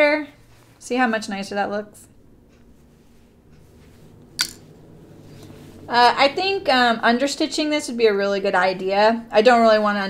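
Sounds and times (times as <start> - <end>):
fabric rustling: 2.2 - 6.6.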